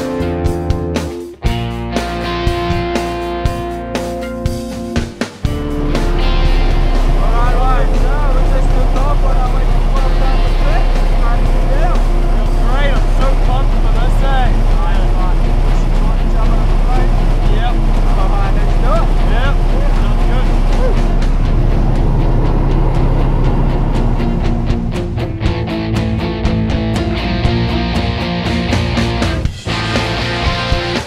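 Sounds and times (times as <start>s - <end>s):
plane engine drone in cabin: 5.6s - 25.5s
indistinct voices: 5.6s - 25.6s.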